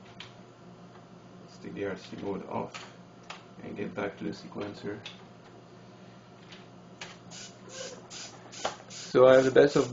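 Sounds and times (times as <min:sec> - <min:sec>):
small servos whirring: 0:07.3 - 0:09.9.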